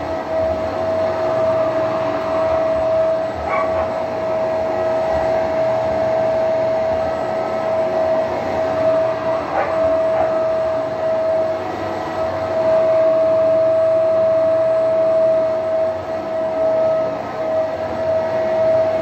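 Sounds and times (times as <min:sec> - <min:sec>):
carpet cleaner motor whining: 0:00.0 - 0:19.0.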